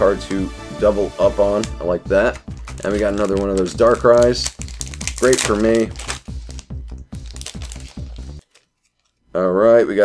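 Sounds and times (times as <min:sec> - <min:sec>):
background music: 0:00.0 - 0:08.5
foil wrapper crinkling: 0:02.3 - 0:09.3.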